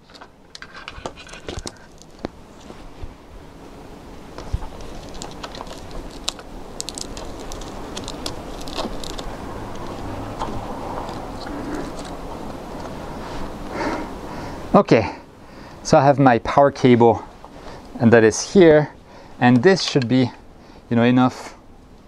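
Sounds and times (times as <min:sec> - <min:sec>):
steady low hiss: 0:00.0 - 0:22.0
plastic connectors clicking: 0:04.7 - 0:12.2.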